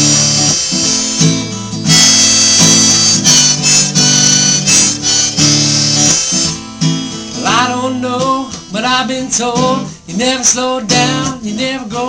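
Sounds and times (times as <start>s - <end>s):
harmonica playing chords: 0.0s - 9.0s
acoustic guitar strumming: 0.0s - 12.0s.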